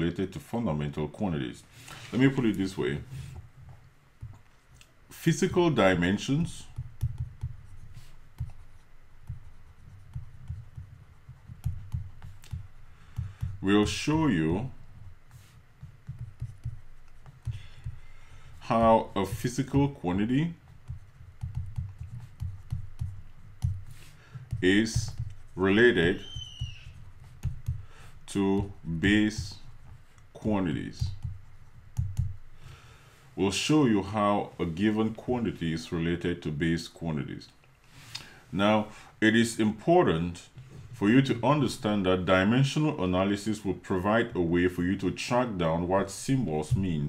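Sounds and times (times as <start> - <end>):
stylus tapping on tablet: 6.7 - 14.0, 14.8 - 19.8, 20.6 - 28.7, 31.0 - 32.5.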